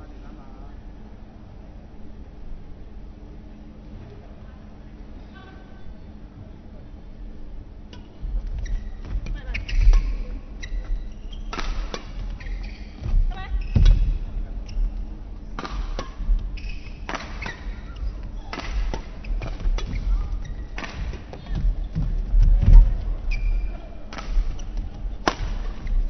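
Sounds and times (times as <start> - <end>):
shoes squeaking: 8.0 - 26.0
rackets striking shuttlecock: 15.6 - 20.0, 20.8 - 21.3, 24.1 - 25.9.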